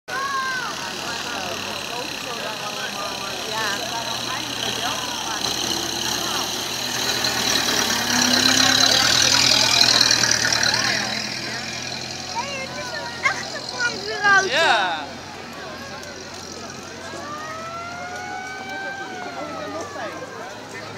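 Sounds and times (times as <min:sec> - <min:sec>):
fire engine driving past: 0:00.1 - 0:20.9.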